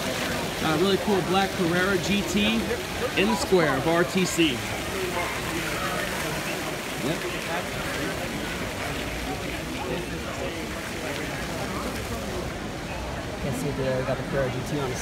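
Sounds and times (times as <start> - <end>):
distant chatter of people: 0.0 - 15.0
outdoor background noise: 0.0 - 15.0.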